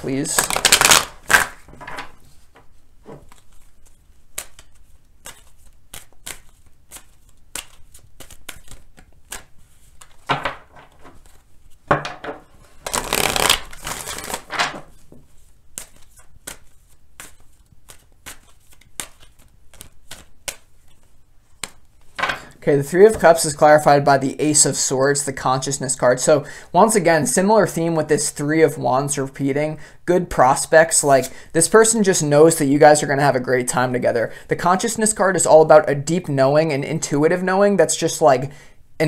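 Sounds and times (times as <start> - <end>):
cards swishing together: 3.2 - 10.2, 12.8 - 22.2
cards clicking and rustling: 3.2 - 11.5, 12.8 - 22.2.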